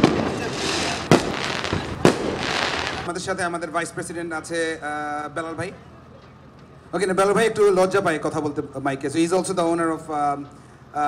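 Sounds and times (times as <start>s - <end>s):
firecracker bangs: 0.0s - 3.1s
dense noisy background: 0.0s - 11.0s.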